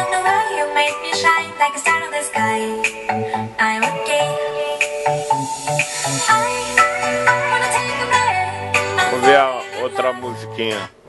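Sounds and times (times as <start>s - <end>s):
song with person singing: 0.0s - 10.9s.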